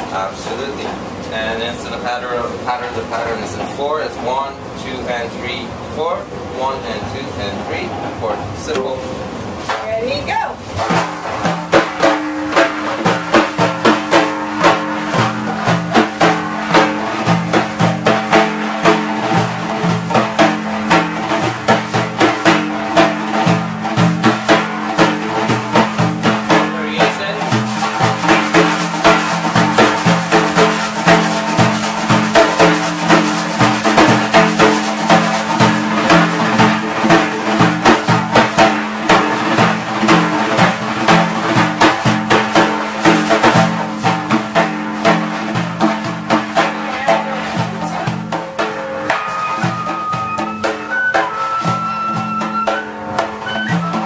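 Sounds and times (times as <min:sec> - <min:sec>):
frame drums playing rhythm: 0:00.0 - 0:54.0.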